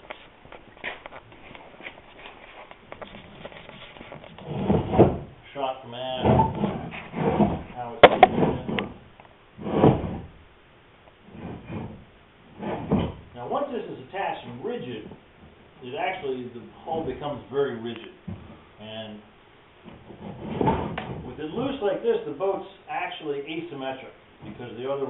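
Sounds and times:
man talking: 0:07.7 - 0:08.8, 0:13.4 - 0:15.2, 0:15.8 - 0:18.2, 0:18.8 - 0:19.3, 0:21.3 - 0:25.0.

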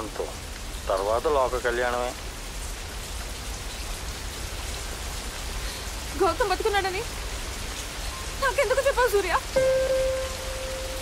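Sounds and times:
heavy rain on stone: 0:00.0 - 0:11.0.

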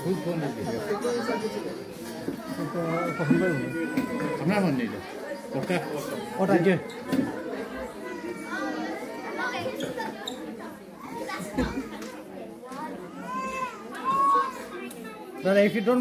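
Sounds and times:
chatter of children and adults: 0:00.0 - 0:16.0.

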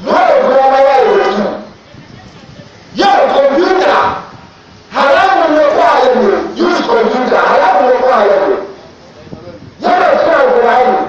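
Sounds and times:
man speaking through a microphone: 0:00.0 - 0:04.3, 0:04.9 - 0:11.0.

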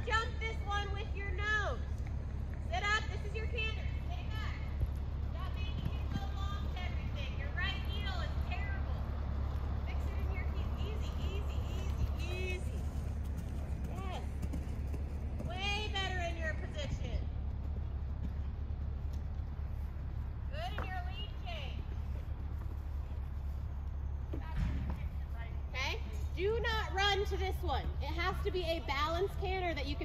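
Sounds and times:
steady low rumble: 0:00.0 - 0:30.0.

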